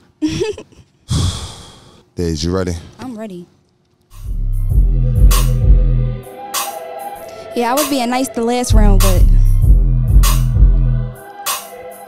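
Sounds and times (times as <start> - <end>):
person sighing: 0.2 - 2.0.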